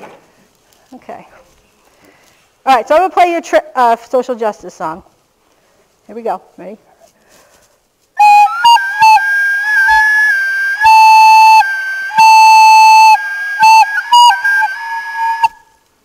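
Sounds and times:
wooden flute playing held notes: 8.2 - 15.8.

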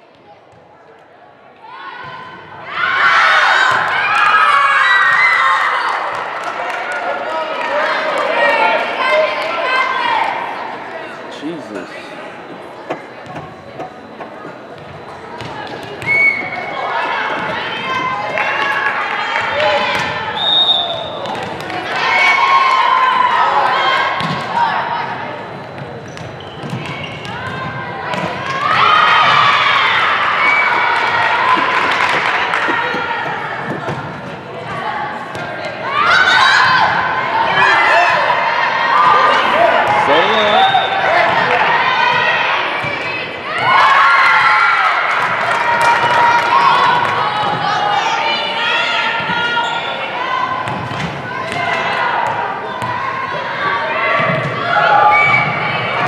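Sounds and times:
people shouting and cheering: 15.4 - 25.4, 26.8 - 56.0.

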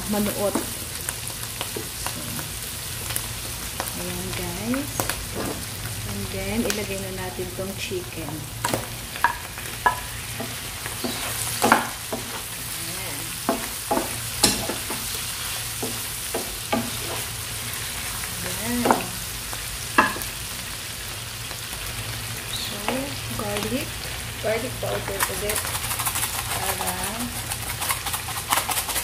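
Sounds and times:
food sizzling in a frying pan: 0.0 - 29.0
wooden spatula scraping a pan: 10.3 - 12.5, 24.9 - 29.0.

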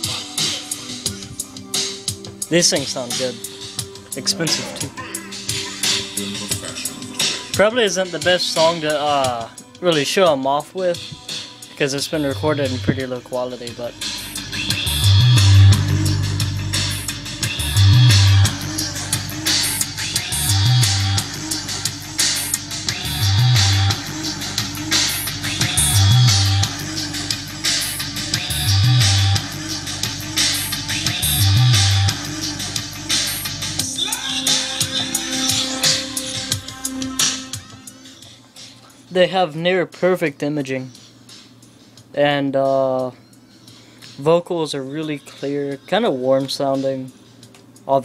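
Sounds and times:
guitar song through speakers: 11.1 - 38.8
deep bass notes: 12.2 - 33.8.

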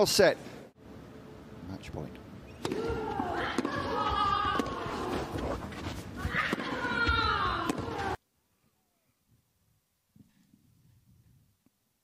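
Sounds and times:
players grunting: 2.8 - 8.2.

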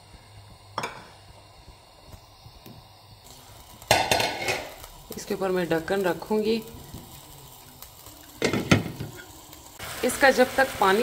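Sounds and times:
chicken sizzling in oil: 0.0 - 11.0.

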